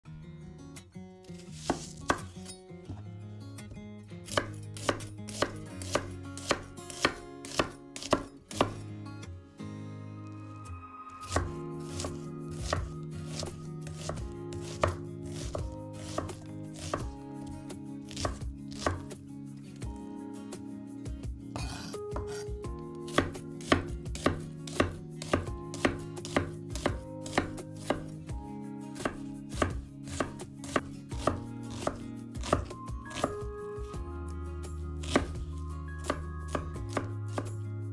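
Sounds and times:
knife chopping on wooden board: 1.6 - 2.3, 4.3 - 8.8, 11.2 - 17.1, 18.1 - 19.2, 21.5 - 28.2, 29.0 - 33.5, 35.0 - 35.4, 36.0 - 37.5.

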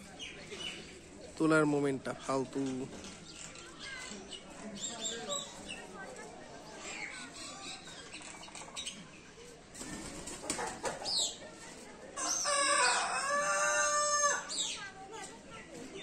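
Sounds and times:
rooster crowing: 12.2 - 14.5.

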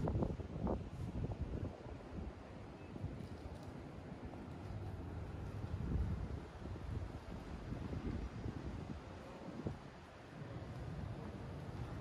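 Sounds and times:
wind buffeting microphone: 0.0 - 2.4, 5.1 - 12.0.

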